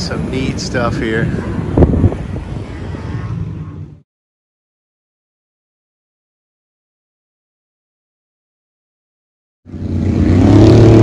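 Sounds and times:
wind: 0.0 - 4.1, 9.7 - 11.0
vehicle engine: 9.7 - 11.0.

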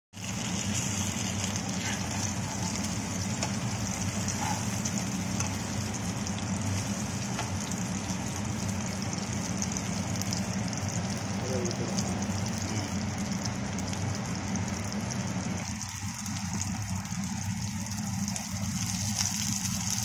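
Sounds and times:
fish sizzling in oil: 0.1 - 20.0
steady low hum: 0.2 - 20.0.

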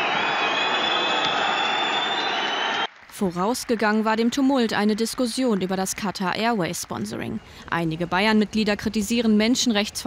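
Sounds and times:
crowd noise: 0.0 - 2.9
long loud whistles: 0.0 - 2.9.

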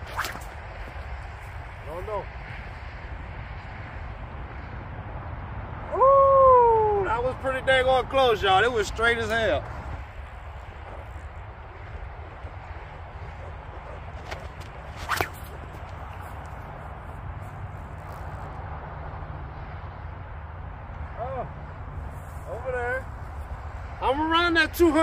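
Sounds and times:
low outdoor rumble: 0.0 - 25.0.

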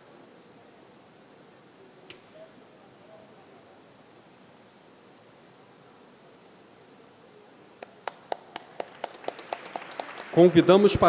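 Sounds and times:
low room hiss: 0.0 - 11.0
hand clapping: 7.8 - 11.0.

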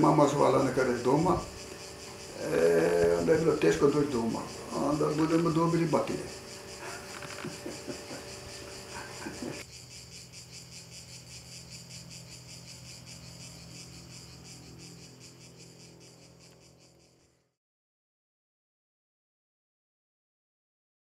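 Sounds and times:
insects chirring: 0.0 - 17.6.

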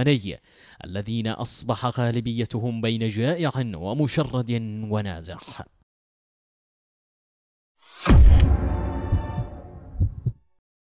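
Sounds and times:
deep booming ident music: 8.0 - 10.2
low thuds: 8.1 - 10.4.

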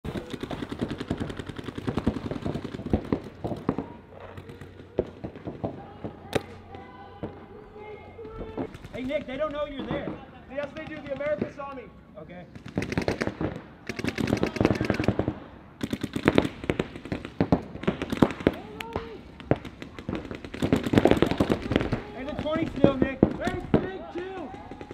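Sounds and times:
paintball markers firing rapidly: 0.0 - 6.6, 12.6 - 24.9
paintball markers firing: 0.1 - 6.8.

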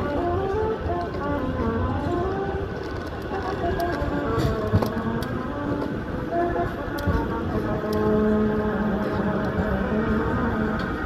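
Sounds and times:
tram wheels rumbling on rails: 0.0 - 11.0.

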